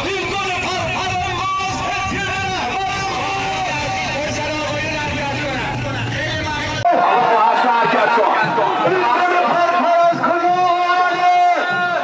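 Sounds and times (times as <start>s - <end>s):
crowd talking: 0.0s - 12.0s
low engine rumble: 0.1s - 6.8s.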